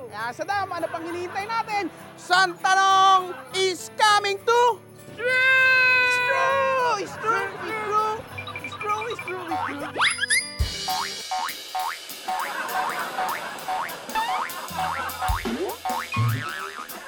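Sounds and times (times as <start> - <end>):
bouncy background music: 0.0 - 17.0
short bouncy repeated notes: 14.7 - 17.0.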